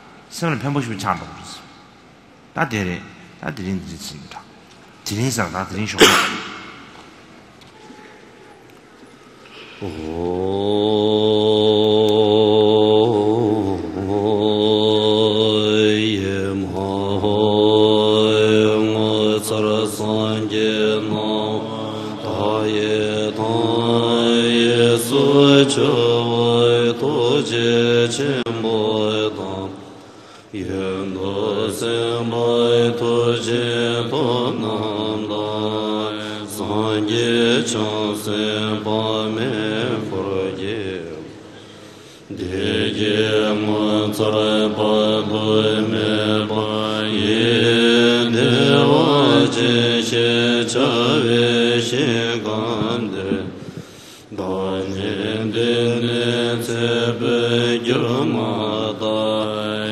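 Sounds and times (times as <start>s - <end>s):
monks chanting: 9.8s - 41.6s, 42.3s - 59.9s.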